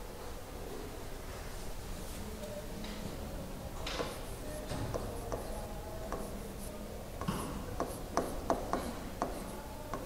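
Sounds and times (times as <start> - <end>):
stylus scratching on tablet: 4.0 - 6.8, 7.8 - 10.0.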